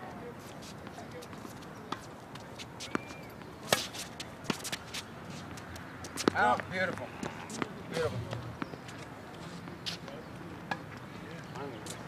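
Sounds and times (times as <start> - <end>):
tennis ball hit by racket: 3.6 - 5.0.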